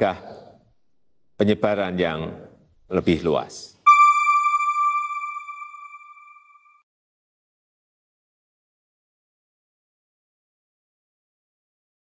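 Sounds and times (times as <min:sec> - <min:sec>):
high pure chime note: 0:03.9 - 0:06.8.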